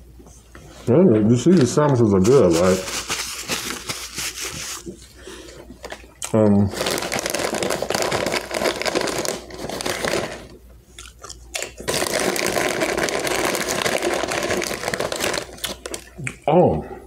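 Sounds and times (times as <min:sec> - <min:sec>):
foil bag crinkling: 0:01.4 - 0:05.1, 0:05.8 - 0:10.6, 0:11.2 - 0:16.2
potato chips crunching: 0:06.2 - 0:16.4.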